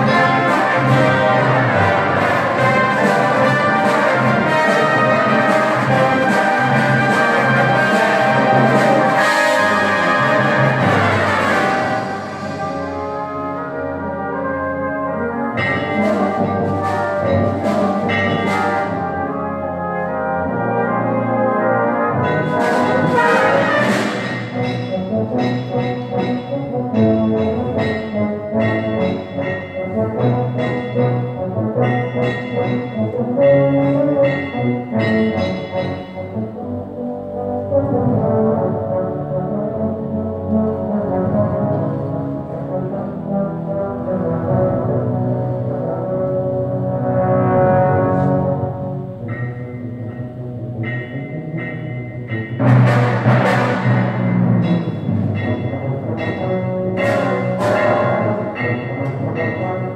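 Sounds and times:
brass band playing chords: 0.0 - 59.9.

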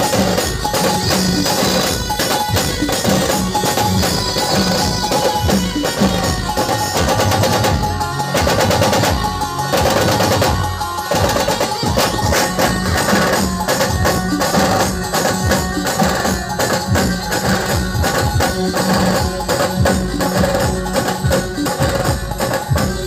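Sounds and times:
band music through loudspeakers: 0.0 - 23.0.

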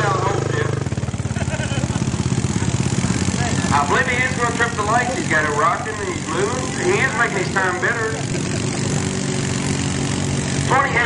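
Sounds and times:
quad engine running hard: 0.0 - 11.0.

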